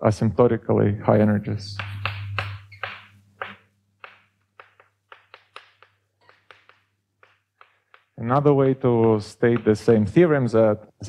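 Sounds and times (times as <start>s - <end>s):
faint low hum: 0.1s - 3.8s
chalk tapping on blackboard: 1.7s - 10.3s.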